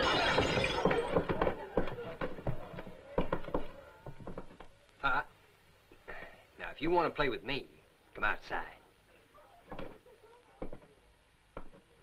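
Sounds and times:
irregular knocks and thuds: 11.5s - 11.9s.

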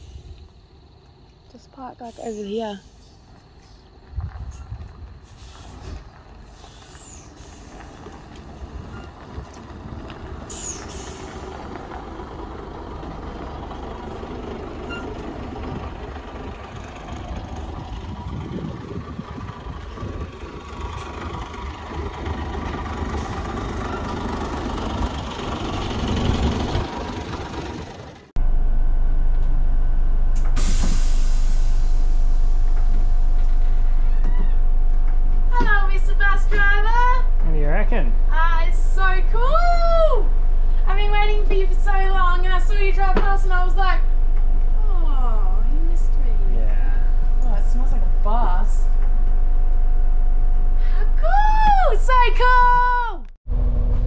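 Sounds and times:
diesel bus engine: 0.0s - 54.0s
tyres on gravel: 0.4s - 28.3s
air brake hiss: 5.2s - 8.0s, 10.5s - 11.6s, 30.4s - 32.5s.

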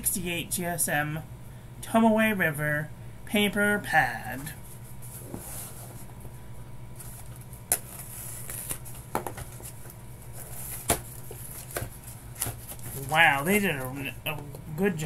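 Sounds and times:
cardboard rubbing and scraping: 4.6s - 6.3s, 7.0s - 13.6s.

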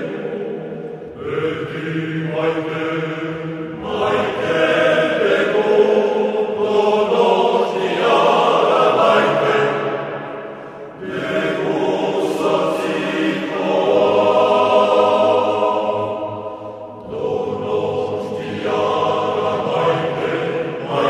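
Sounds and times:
male choir singing: 0.0s - 21.0s.

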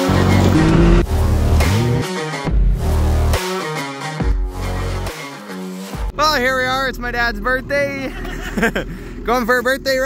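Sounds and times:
electronic intro music: 0.0s - 3.5s.

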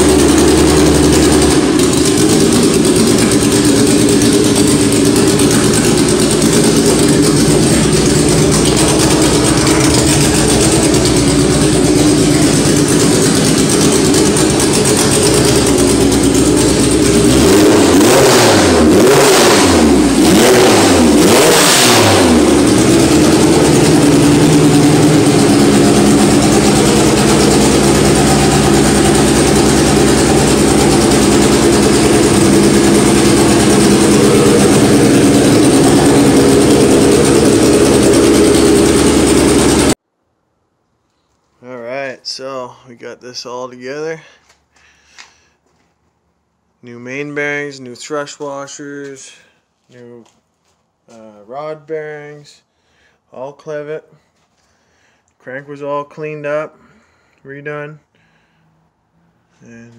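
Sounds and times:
car engine idling: 0.0s - 40.0s
car engine revving: 0.0s - 40.0s.

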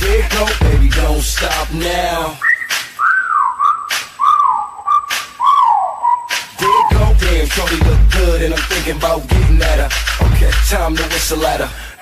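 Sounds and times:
whistled melody: 2.3s - 7.3s.

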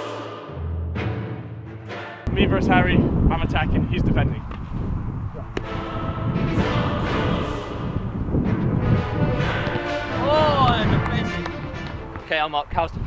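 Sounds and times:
background music with sustained notes: 0.0s - 2.3s, 5.6s - 12.4s.

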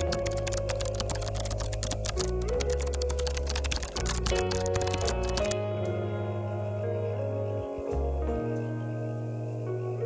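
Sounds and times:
keyboard typing clicks: 0.0s - 5.6s
background music with chords: 0.0s - 10.0s.

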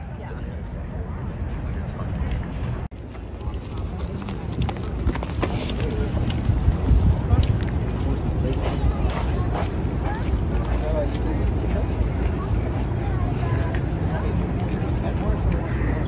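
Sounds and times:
city street traffic: 0.0s - 16.0s
wind rumbling on microphone: 0.0s - 16.0s.

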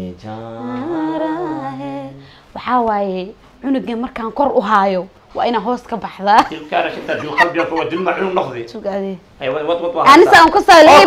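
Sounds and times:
man singing wordless melody: 0.0s - 2.3s
low steady hum: 0.0s - 11.0s.

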